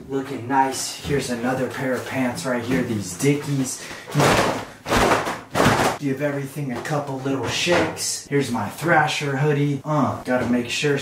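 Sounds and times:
fabric snapping and flapping: 0:04.2 - 0:06.0.

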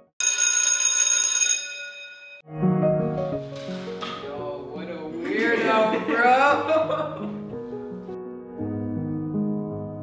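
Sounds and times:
electric school bell ringing: 0:00.2 - 0:02.4.

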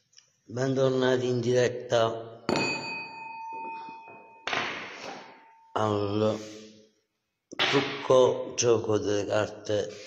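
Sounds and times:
metal singing bowl ringing: 0:02.5 - 0:04.6, 0:05.2 - 0:05.8.

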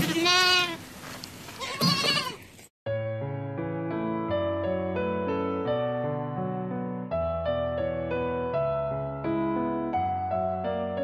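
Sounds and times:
goat bleating: 0:00.0 - 0:00.9, 0:01.6 - 0:02.6
piano music: 0:02.9 - 0:11.0.

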